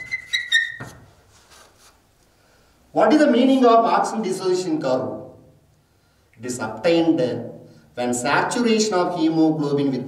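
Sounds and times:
chalk squeaking on chalkboard: 0.0 - 2.0.

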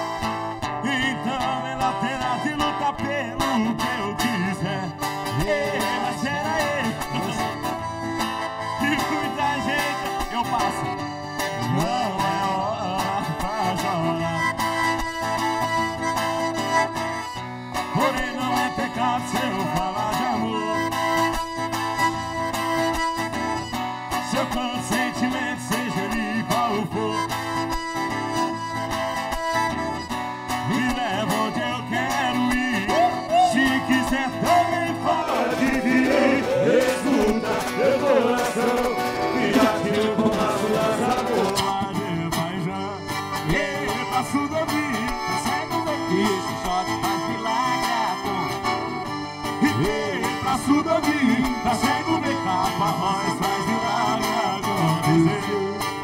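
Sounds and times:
accordion: 0.0 - 56.0
acoustic guitar: 0.0 - 56.0
live band music: 0.0 - 56.0.

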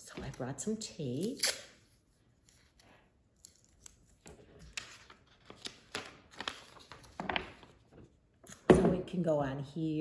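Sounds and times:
paper being handled: 3.4 - 8.2.

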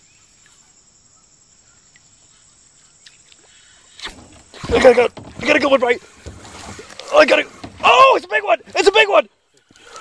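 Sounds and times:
faint insect hum: 0.0 - 10.0
small ticks: 9.5 - 10.0.

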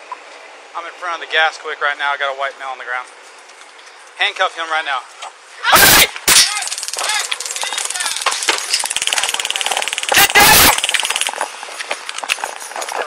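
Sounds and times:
taser crackling: 5.7 - 13.0.

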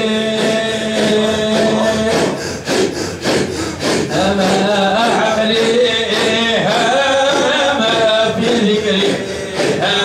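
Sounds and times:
men chanting in unison: 0.0 - 10.0
rhythmic rasping breath-chanting: 0.0 - 10.0.

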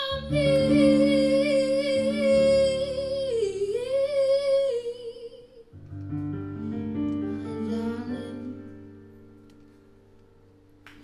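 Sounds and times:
woman singing with vibrato: 0.0 - 5.7, 7.4 - 8.7.

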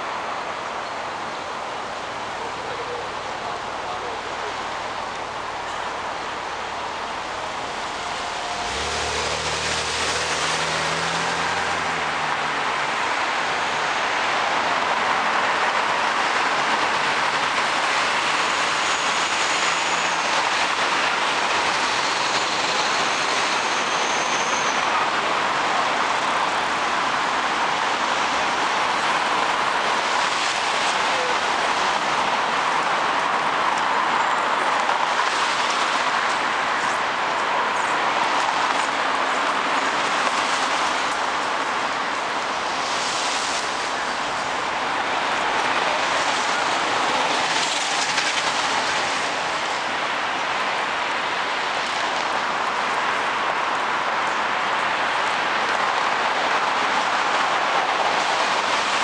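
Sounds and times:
dense traffic roar: 0.0 - 59.0
faint brake squeals: 22.4 - 25.0.

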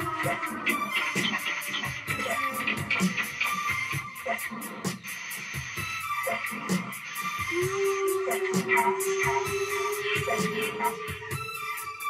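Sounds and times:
experimental rock band playing: 0.0 - 12.0
fast steady high beat: 0.0 - 12.0.

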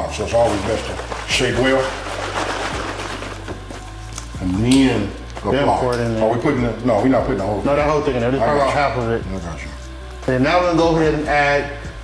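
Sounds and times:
quiet background music: 0.0 - 12.0
liquid sloshing in shaken carton: 0.2 - 3.8.

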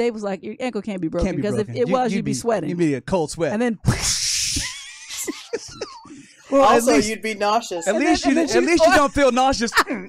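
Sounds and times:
person laughing: 4.5 - 6.3, 7.8 - 10.0.

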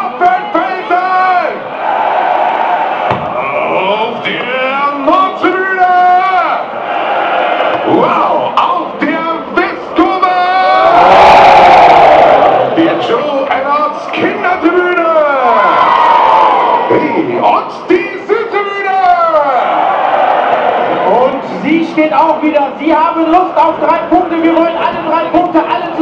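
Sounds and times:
crowd cheering: 0.0 - 26.0.

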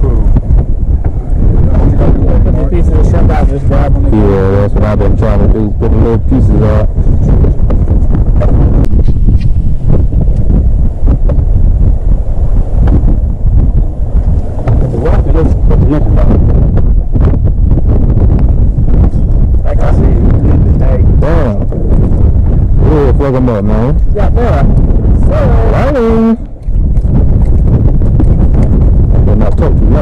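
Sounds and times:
wind buffeting microphone: 0.0 - 30.0
muffled voices: 1.6 - 7.5, 14.7 - 16.4, 19.1 - 22.1.

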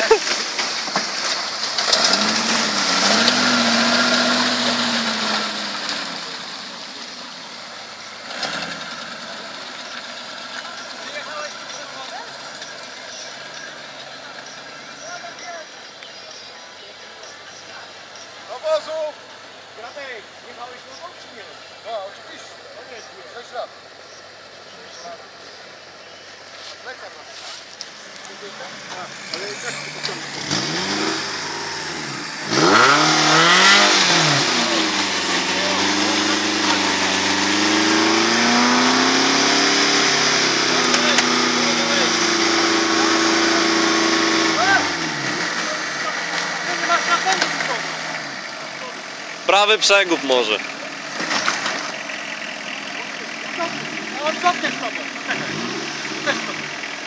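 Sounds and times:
buggy engine revving: 0.0 - 57.0
scattered voices: 9.3 - 30.6, 44.4 - 57.0.

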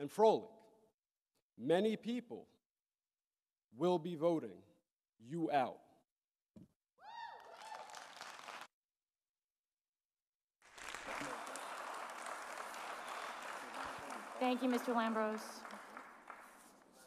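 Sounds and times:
audience applauding: 7.3 - 8.7, 10.6 - 17.0.

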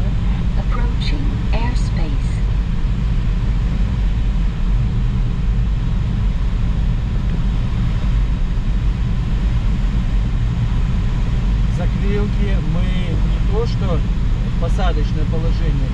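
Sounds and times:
light aircraft engine drone: 0.0 - 15.9.

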